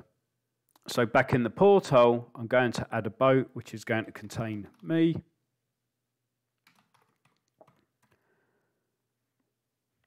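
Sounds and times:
computer keyboard key clicks: 6.6s - 8.2s.

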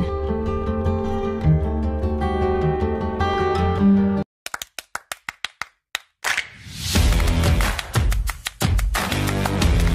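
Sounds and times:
rapid sharp claps: 4.5s - 9.9s.

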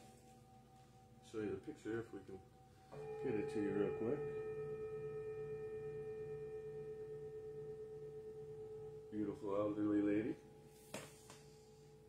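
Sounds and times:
struck metal bowl ringing tone: 0.0s - 12.0s.

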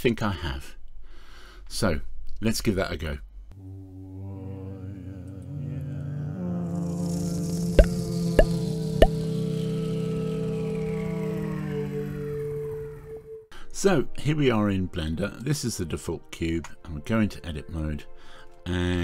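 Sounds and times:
sustained synth chord: 4.9s - 13.5s.

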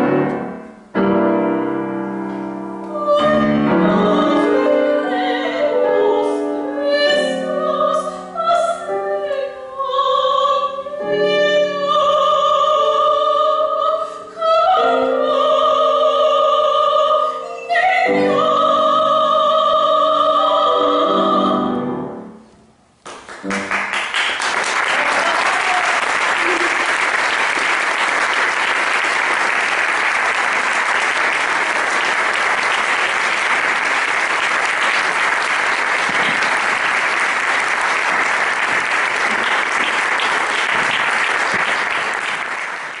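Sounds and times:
audience applause: 23.1s - 43.0s.

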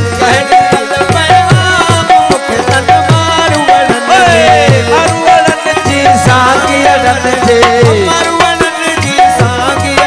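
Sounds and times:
held melody line: 0.0s - 10.0s.

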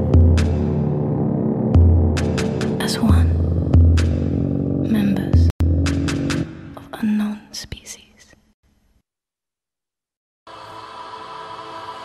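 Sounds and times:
electronic music: 0.0s - 4.9s
loud low hum: 0.0s - 6.8s
whispered voice: 6.8s - 8.4s.

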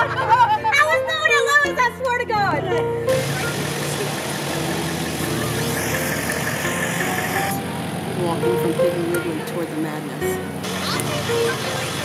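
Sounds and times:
truck engine idling: 2.6s - 12.0s.

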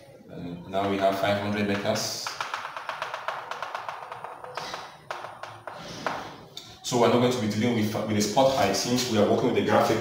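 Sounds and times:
chalk ticking on blackboard: 0.8s - 6.4s.

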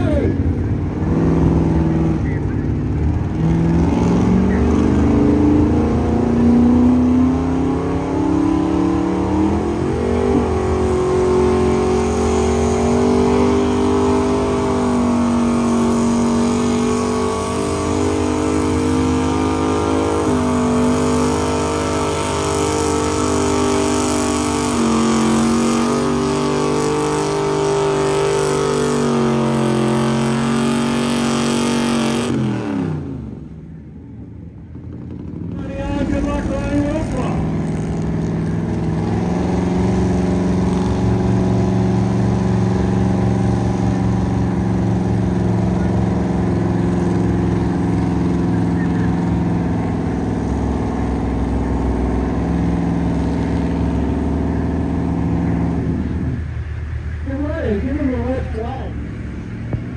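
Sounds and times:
truck engine revving under load: 0.0s - 59.9s.

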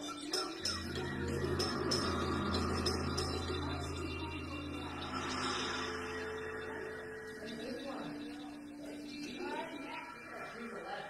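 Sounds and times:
electronic drone: 0.0s - 10.2s
low amplifier hum: 0.8s - 8.8s.

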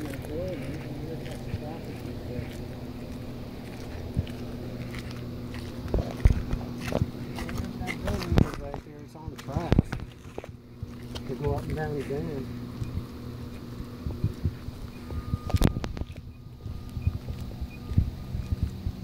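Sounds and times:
footsteps on concrete: 0.0s - 18.9s
low hum: 0.0s - 19.0s.

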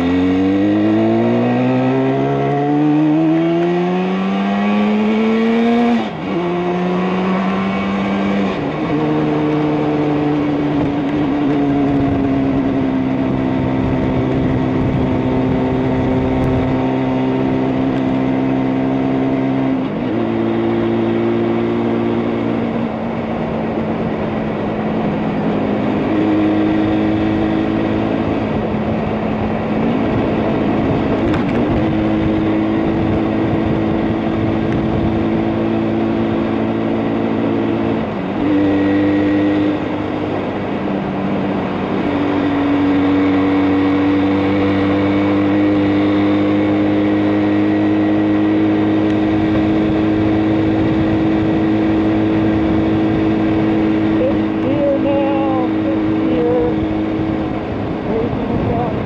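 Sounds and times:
wind noise: 0.0s - 59.0s
two-stroke motorcycle engine running: 8.6s - 38.5s, 39.3s - 59.0s.

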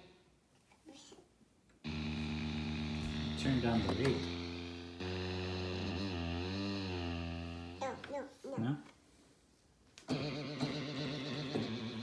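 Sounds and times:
synthesizer low warbling note: 1.9s - 7.8s.

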